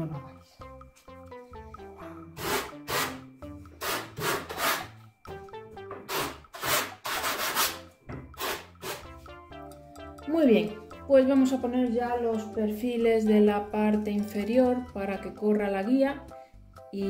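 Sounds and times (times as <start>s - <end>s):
background music: 0.0s - 17.0s
hand tool scraping wooden strip: 2.4s - 3.2s, 3.8s - 5.1s, 6.1s - 9.1s.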